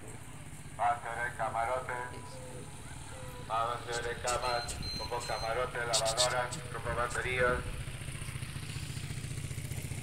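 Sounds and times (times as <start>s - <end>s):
motorcycle engine low putter: 2.2s - 10.0s.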